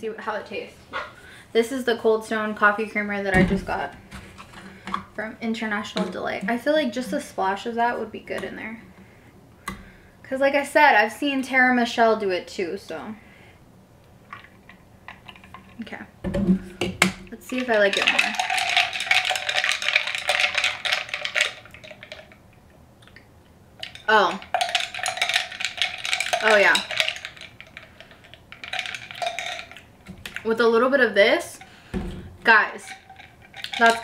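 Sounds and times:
straw stirring ice in glass: 0:17.4 - 0:22.4, 0:23.8 - 0:30.6, 0:32.5 - 0:34.0.

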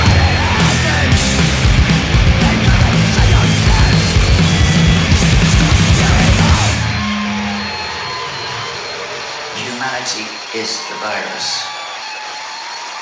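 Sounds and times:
hardcore punk song: 0:00.0 - 0:10.5.

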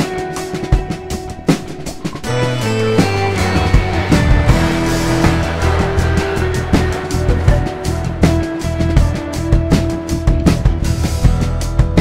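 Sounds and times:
rock band music: 0:00.0 - 0:12.0
cymbal strokes: 0:02.6 - 0:09.5.

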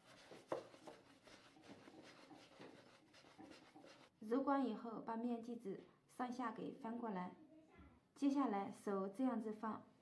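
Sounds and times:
dough rubbing on wooden board: 0:00.0 - 0:04.1.

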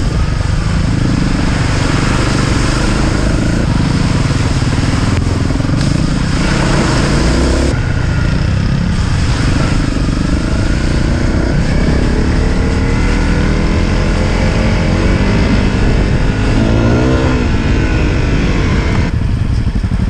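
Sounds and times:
motorcycle engine under load: 0:00.0 - 0:20.0
riding noise rush: 0:00.0 - 0:20.0.

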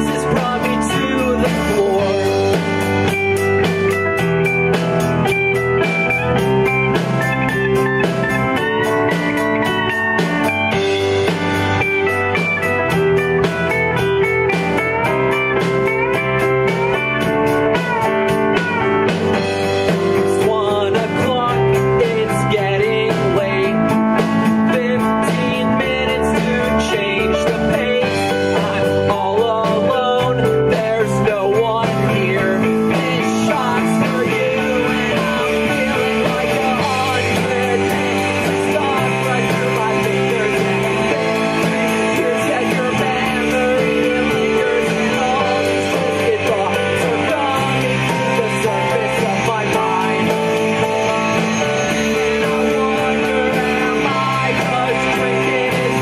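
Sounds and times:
bass: 0:00.0 - 0:56.0
drum kit beat: 0:00.0 - 0:56.0
electric guitar: 0:00.0 - 0:56.0
keyboard: 0:00.0 - 0:56.0.

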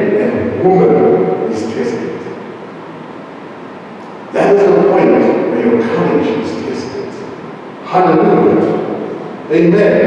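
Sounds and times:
hall room tone hiss: 0:00.0 - 0:10.0
speech echo: 0:00.0 - 0:10.0.

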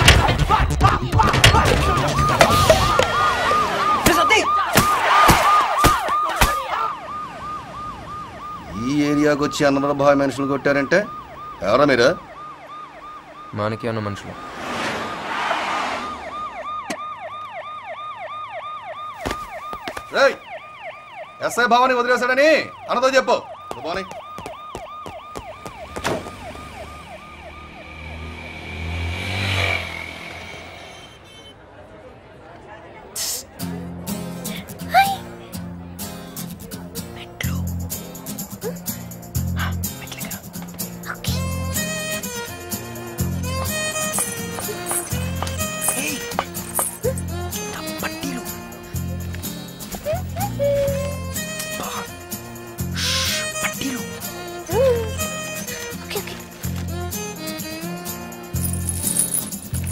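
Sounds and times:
police siren wailing: 0:01.2 - 0:30.6, 0:41.3 - 0:58.2.

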